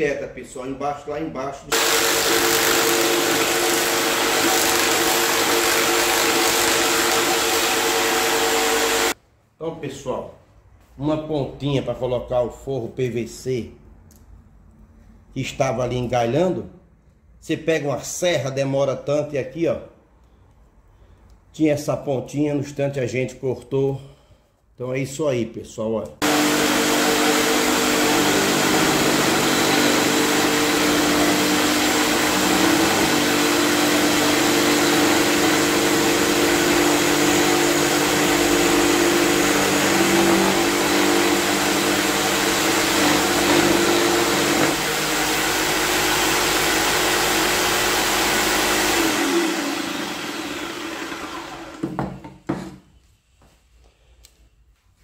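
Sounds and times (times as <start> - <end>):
jigsaw cutting board: 1.7 - 9.2, 26.2 - 52.8
motor winding down: 1.7 - 9.2, 26.2 - 51.8.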